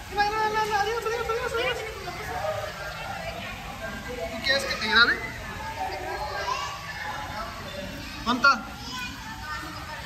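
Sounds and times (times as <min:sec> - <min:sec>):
chatter of voices with children: 0:00.0 - 0:10.0.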